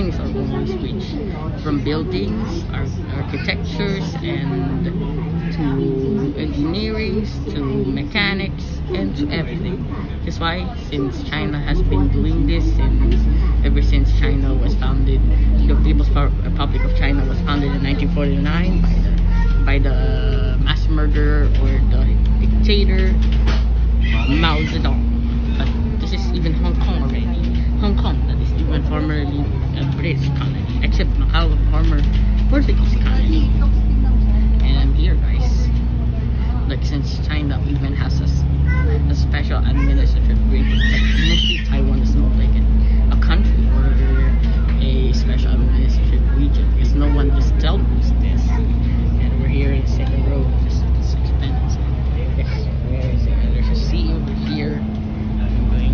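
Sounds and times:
bus engine and road rumble: 0.0 - 55.9
constant hum: 0.0 - 55.9
voices talking: 0.0 - 55.9.

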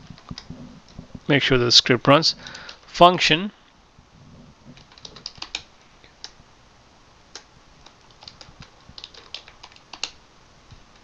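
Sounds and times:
computer keyboard typing: 4.8 - 6.4, 7.3 - 10.2.

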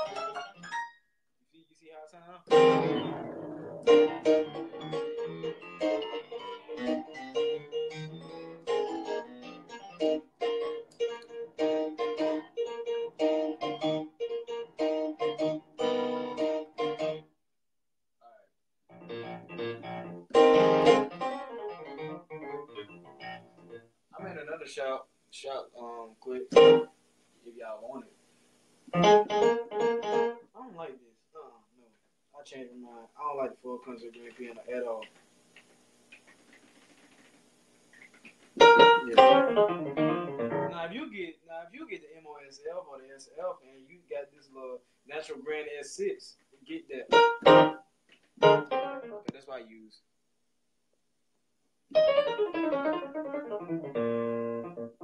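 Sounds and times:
piano repeated notes and chords: 0.0 - 1.0, 2.5 - 17.2, 18.9 - 24.4, 26.5 - 26.9, 29.0 - 30.5, 38.6 - 41.0, 47.0 - 47.8, 48.4 - 49.4, 51.9 - 55.0.

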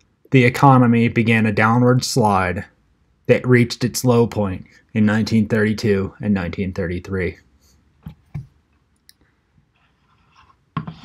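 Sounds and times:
faint scratchy rustling: 9.6 - 11.0.

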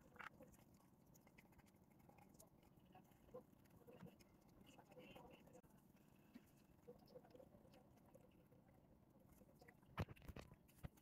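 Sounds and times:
cats chewing and smacking: 0.0 - 11.0.

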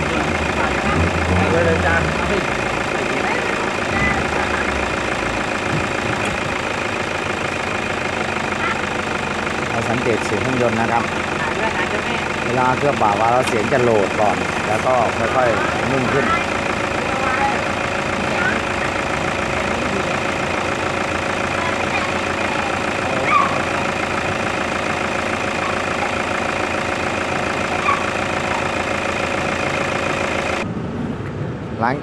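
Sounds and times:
diesel engine idling: 0.0 - 31.5.

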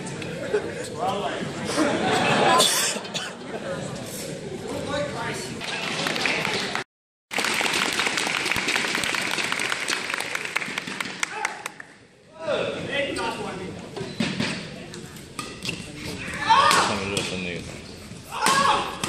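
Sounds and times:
crowd chatter: 0.0 - 6.8
crowd applauding and cheering: 5.6 - 11.9.

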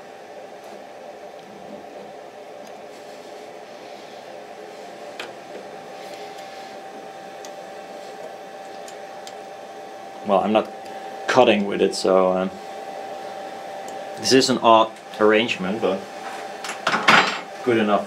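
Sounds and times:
machine hum and hiss: 0.0 - 18.0.

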